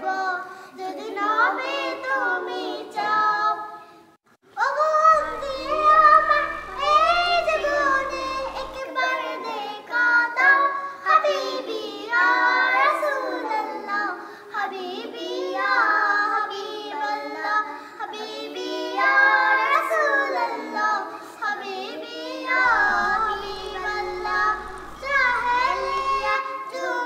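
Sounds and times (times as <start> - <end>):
girls singing devotional song: 0.0 - 27.0.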